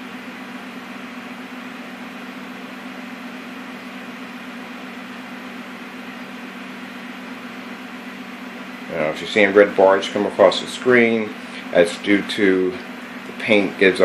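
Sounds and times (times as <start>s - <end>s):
cooling fan running: 0.0s - 14.0s.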